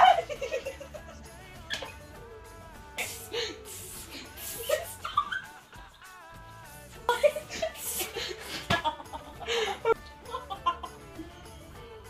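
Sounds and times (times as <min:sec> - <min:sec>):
young people laughing: 0:00.0 - 0:01.2, 0:04.6 - 0:06.2, 0:07.0 - 0:11.1
background music: 0:00.0 - 0:12.0.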